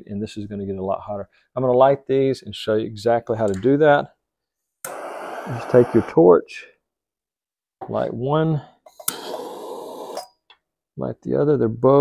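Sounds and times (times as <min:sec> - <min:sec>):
torch lighter clicking on: 0:04.9 - 0:06.0
jet flame hissing: 0:04.9 - 0:06.3, 0:09.0 - 0:10.2.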